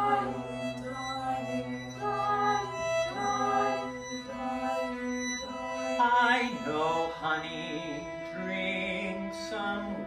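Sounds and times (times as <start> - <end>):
opera singer with vibrato: 0.0 - 4.9
string ensemble sustained notes: 0.0 - 10.0.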